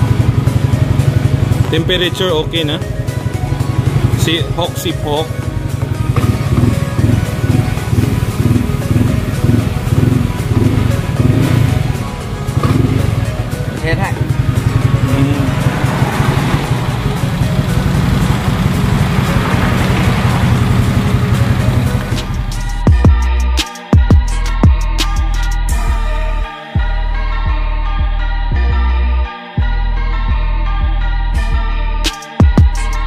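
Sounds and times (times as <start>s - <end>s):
motorcycle engine idling: 0.0s - 24.9s
music playing: 0.0s - 33.0s.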